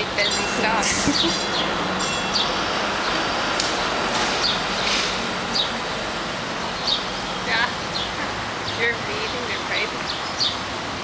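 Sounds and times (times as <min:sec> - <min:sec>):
sparrows chirping: 0:00.0 - 0:10.8
outdoor background hiss: 0:00.0 - 0:11.0.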